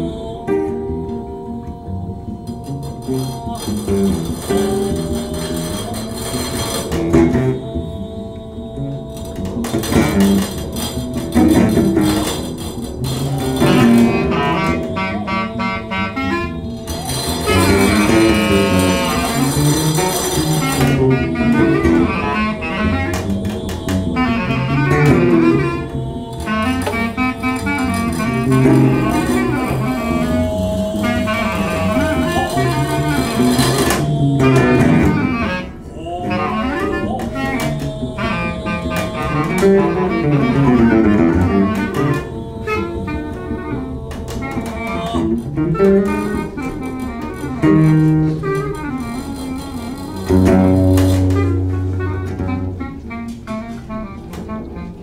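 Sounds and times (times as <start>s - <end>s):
acoustic guitar: 0.0s - 55.0s
clarinet: 0.0s - 55.0s
double bass line: 0.0s - 55.0s.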